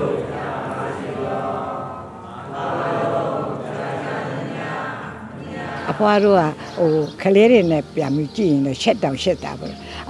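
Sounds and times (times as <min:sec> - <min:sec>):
group chanting: 0:00.0 - 0:06.4.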